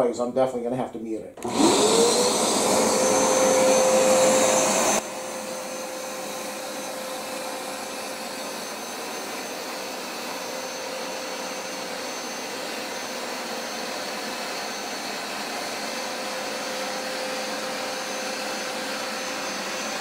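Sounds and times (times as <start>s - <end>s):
carpet cleaner motor whining: 1.4s - 20.0s.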